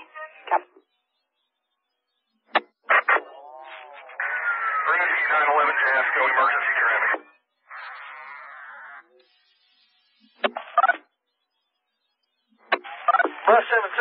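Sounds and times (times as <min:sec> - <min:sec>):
garbled radio transmission: 0:00.0 - 0:00.8, 0:02.6 - 0:11.1, 0:12.6 - 0:14.0.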